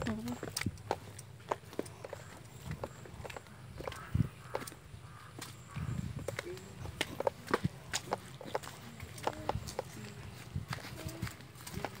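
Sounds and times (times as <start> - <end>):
footsteps on gravel path: 0.0 - 12.0.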